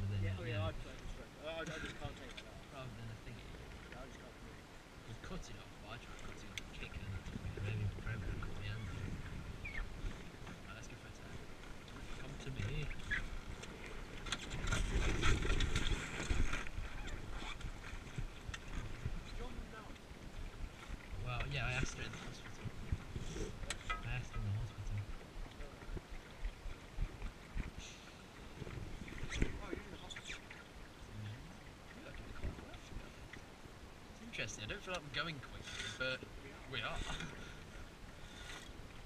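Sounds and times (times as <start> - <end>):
water washing along hull: 0.0 - 39.0
wind on microphone: 6.7 - 10.6, 12.8 - 33.1
low indistinct voices: 29.4 - 33.4.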